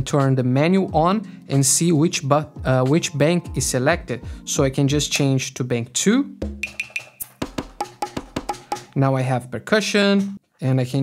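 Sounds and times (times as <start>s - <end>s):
short pitched percussion hits: 6.4s - 8.4s.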